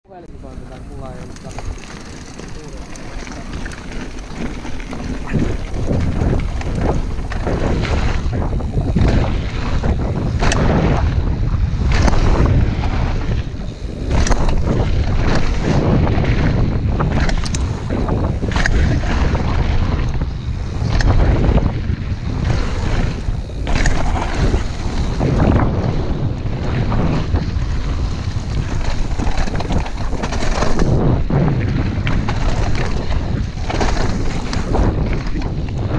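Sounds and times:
wind buffeting microphone: 0:00.1 - 0:35.9
bike knocking and rattling: 0:00.6 - 0:35.9
tyre rumble on gravel: 0:01.3 - 0:07.6, 0:28.7 - 0:31.0.

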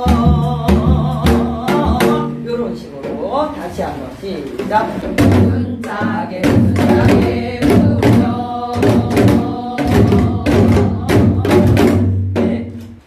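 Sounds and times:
woman singing folk song: 0:00.0 - 0:02.7, 0:05.1 - 0:12.9.

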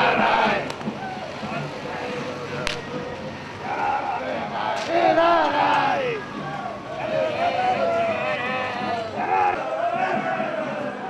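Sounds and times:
people calling out: 0:00.0 - 0:11.0.

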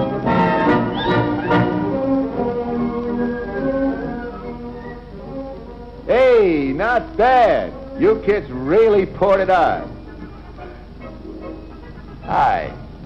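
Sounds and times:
orchestral music with brass: 0:00.0 - 0:06.0.

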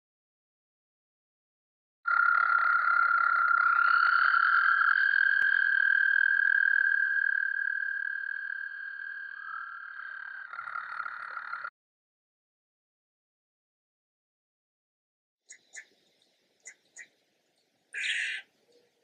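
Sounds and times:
toads trilling: 0:02.1 - 0:11.7, 0:18.0 - 0:18.5.

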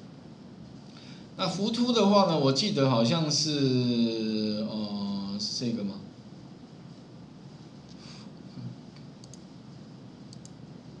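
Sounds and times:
faint room hum: 0:00.0 - 0:11.0
computer mouse clicking: 0:09.0 - 0:09.5, 0:10.3 - 0:10.6.

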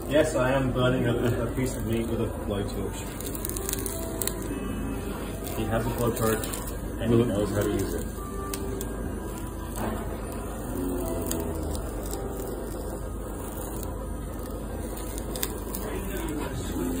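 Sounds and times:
blowtorch flame hissing: 0:00.0 - 0:17.0.

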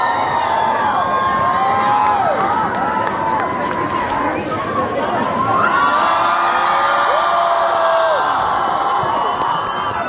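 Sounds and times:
crowd cheering and screaming: 0:00.0 - 0:10.0.

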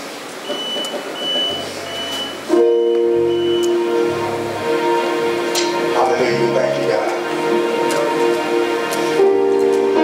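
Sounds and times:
bass guitar notes: 0:01.5 - 0:10.0
worship band sustained chord: 0:02.5 - 0:10.0.

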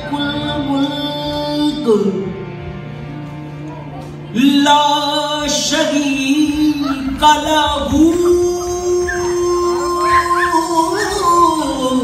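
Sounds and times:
man singing sustained note: 0:00.0 - 0:02.4, 0:04.3 - 0:12.0
harmonium: 0:00.0 - 0:12.0.

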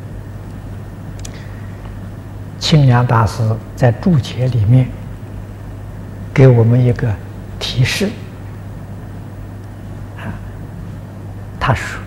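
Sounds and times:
background hiss: 0:00.0 - 0:12.0
man speaking: 0:02.6 - 0:05.0, 0:06.3 - 0:08.4, 0:11.6 - 0:12.0.

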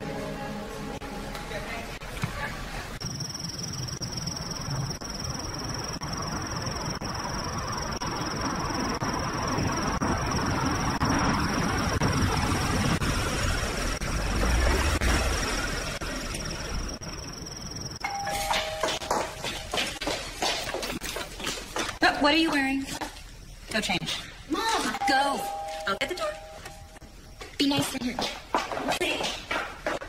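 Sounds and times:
two-tone doorbell chime: 0:18.0 - 0:19.8, 0:25.0 - 0:27.0
faint high tone: 0:25.0 - 0:27.0.

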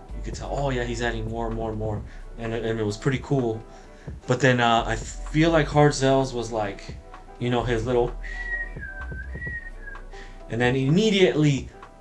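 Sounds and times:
man whistling a long note: 0:08.2 - 0:10.2.

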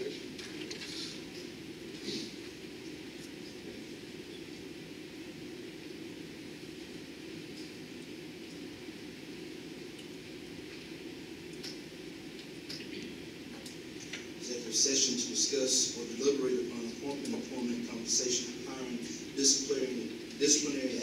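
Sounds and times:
room hum rumble: 0:00.0 - 0:21.0.

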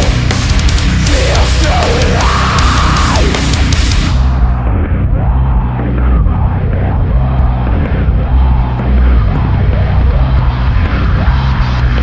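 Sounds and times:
heavy metalcore music: 0:00.0 - 0:12.0.

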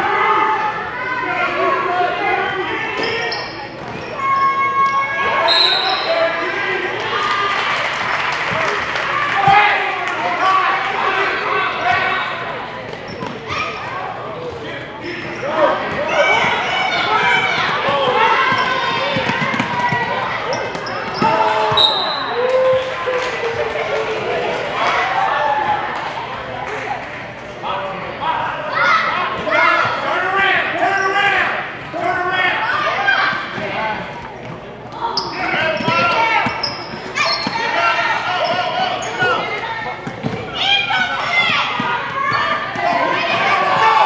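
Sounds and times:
echoing voices in gym: 0:00.0 - 0:44.0.

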